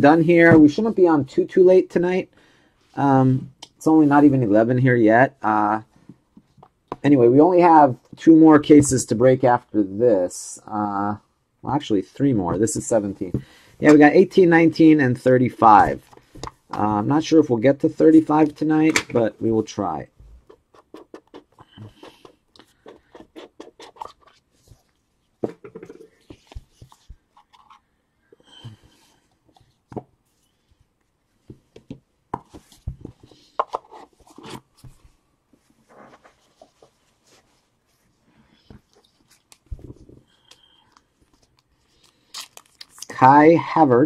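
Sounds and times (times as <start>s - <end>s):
cards and cardboard boxes handled: 20.4s - 27.9s, 31.4s - 37.6s.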